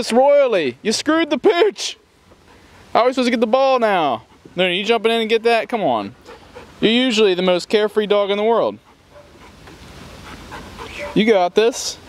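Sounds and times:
dog panting: 0:03.8 - 0:05.2, 0:06.1 - 0:07.2, 0:08.7 - 0:11.4.

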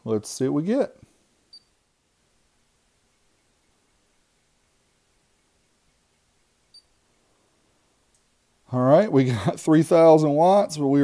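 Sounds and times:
faint high-pitched beep: 0:01.5 - 0:01.8, 0:06.7 - 0:07.0.

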